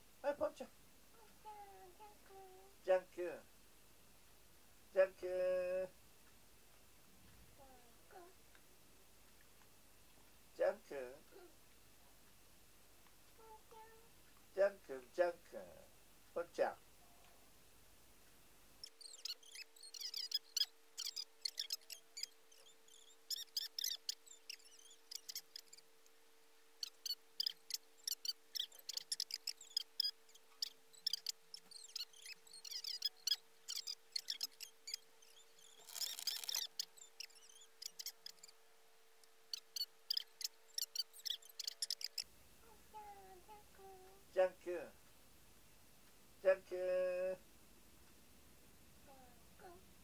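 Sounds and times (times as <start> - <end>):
faint steady tone: 0.0 - 50.0
high-pitched squeaky chirps: 18.8 - 25.9, 26.8 - 38.6, 39.3 - 44.2.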